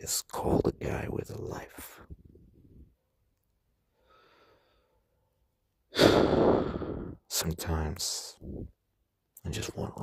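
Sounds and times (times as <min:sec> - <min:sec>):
man sighing heavily: 0:05.9 - 0:07.2.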